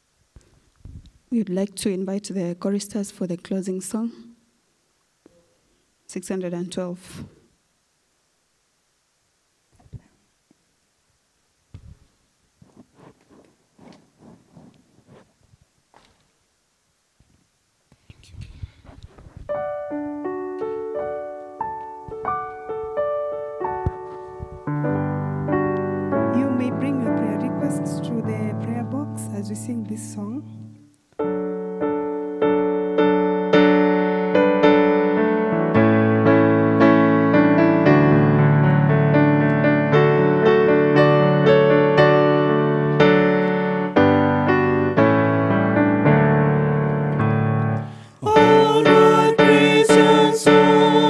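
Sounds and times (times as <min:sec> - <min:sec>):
electric piano chords: 0:19.5 - 0:51.0.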